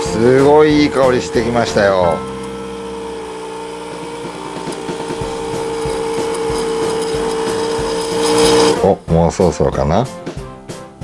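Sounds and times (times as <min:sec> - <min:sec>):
coffee machine humming: 0:00.0 - 0:09.0.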